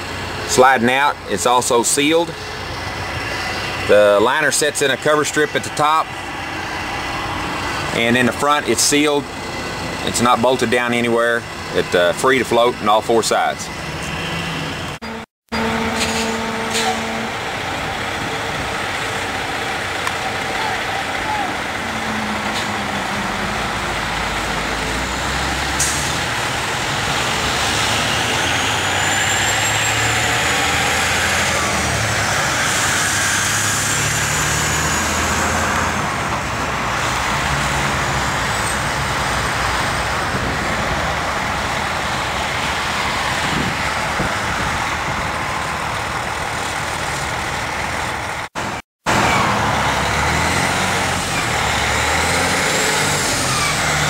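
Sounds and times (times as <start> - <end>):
heavy truck engine running: 0.0 - 54.0.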